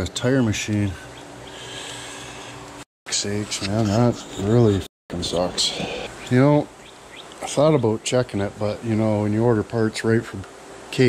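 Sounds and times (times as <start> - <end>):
low mechanical hum: 0.0 - 11.0.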